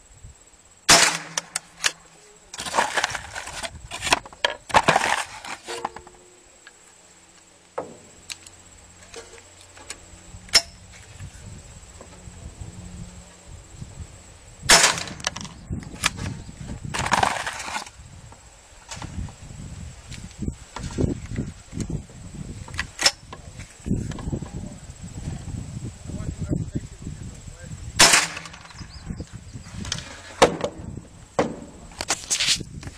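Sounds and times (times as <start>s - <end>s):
rifle shot: 0.9s - 1.6s, 14.7s - 15.3s, 28.0s - 28.8s
sharp knocks: 31.4s - 31.8s.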